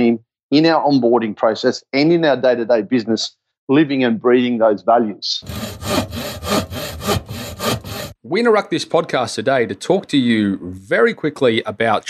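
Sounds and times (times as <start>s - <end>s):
speech: 0.0s - 5.4s, 8.2s - 12.0s
rhythmic rasping strokes: 5.4s - 8.2s.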